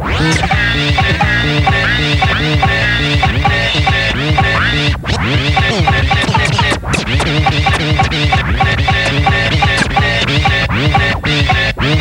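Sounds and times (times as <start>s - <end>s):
turntable scratching: 0.0s - 12.0s
steady beat: 0.2s - 12.0s.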